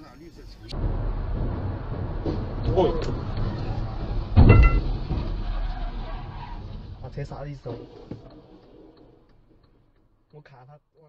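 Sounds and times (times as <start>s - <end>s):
car driving rumble: 0.7s - 7.4s.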